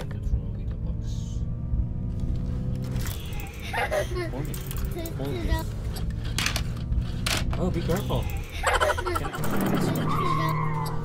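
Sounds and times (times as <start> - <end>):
engine hum: 0.0 - 11.0
tyres skidding with squeal: 2.6 - 11.0
child laughing: 3.3 - 6.0, 8.1 - 11.0.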